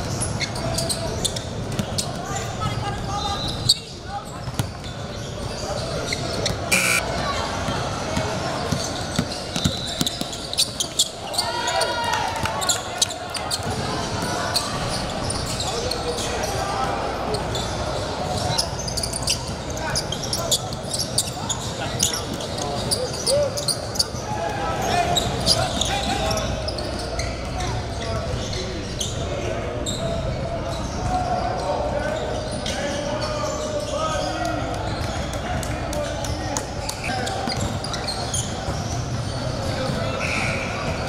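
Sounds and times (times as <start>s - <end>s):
chatter of voices echoing: 0.0s - 41.0s.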